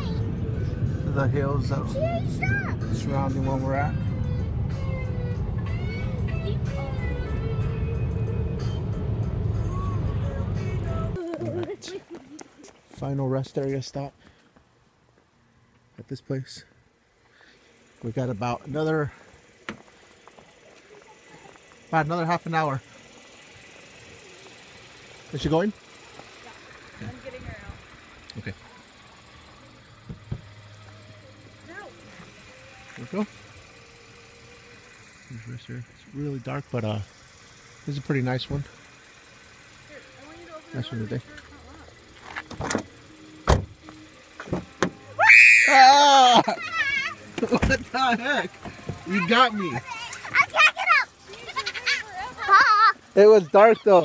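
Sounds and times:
music playing: 0:00.0 - 0:11.9
car road and engine rumble: 0:00.0 - 0:54.0.

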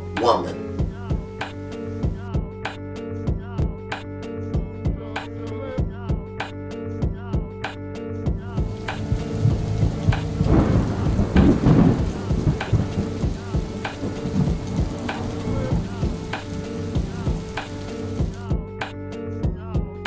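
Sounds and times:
slow music with steady beat: 0:00.0 - 0:20.0
rain hissing: 0:08.5 - 0:18.4
thunder rumble: 0:08.6 - 0:18.4.

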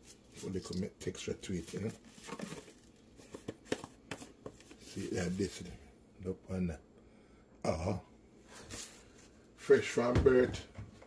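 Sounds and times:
container rustling: 0:00.0 - 0:05.6.

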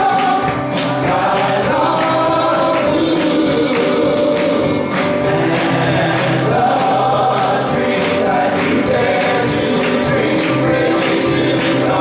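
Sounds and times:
congregation singing: 0:00.0 - 0:12.0
keyboard: 0:00.0 - 0:12.0
man singing: 0:00.0 - 0:12.0.

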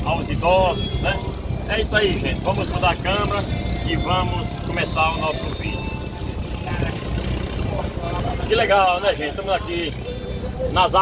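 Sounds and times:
boat motor rumbling: 0:00.0 - 0:11.0
faint voices: 0:00.0 - 0:11.0.

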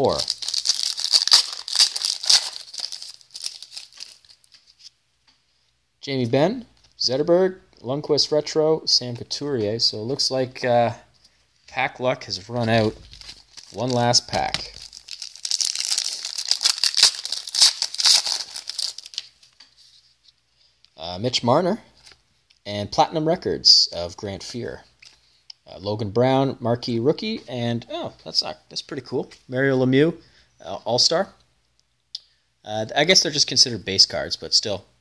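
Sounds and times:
wrapper tearing and crinkling: 0:00.0 - 0:04.6, 0:12.6 - 0:19.4.

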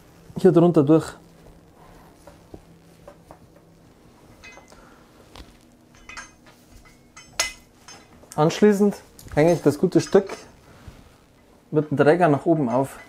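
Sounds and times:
metal clank on hanging rail: 0:04.4 - 0:04.8, 0:05.9 - 0:08.2
meat hook clinking and scraping: 0:05.9 - 0:08.4, 0:09.7 - 0:10.5, 0:12.4 - 0:13.0.

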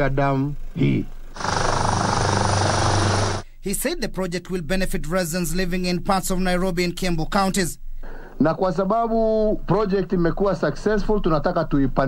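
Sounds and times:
machine hum with fast flutter: 0:00.0 - 0:03.6.

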